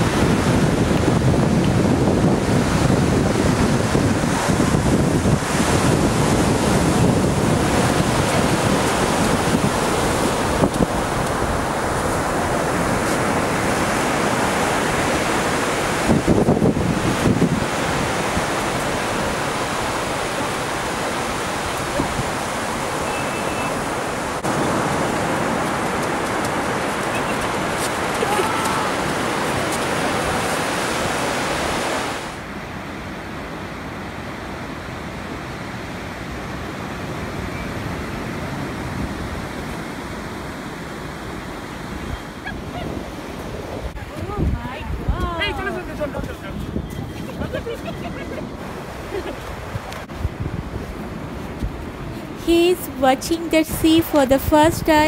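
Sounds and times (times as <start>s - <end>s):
ocean surf breaking on sand: 0.0s - 55.0s
wind rumble on microphone: 0.0s - 55.0s.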